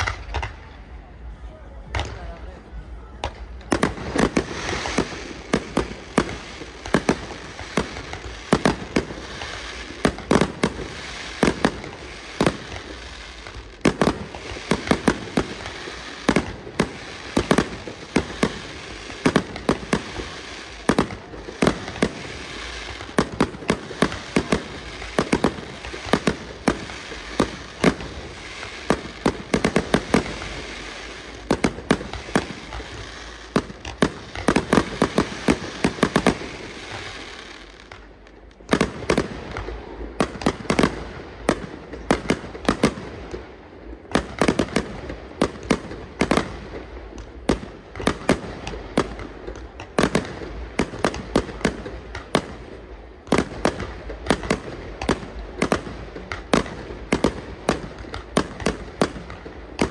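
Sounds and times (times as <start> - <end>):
firework bangs: 0.0 - 1.0, 3.2 - 59.9
constant rush of noise: 0.0 - 59.9.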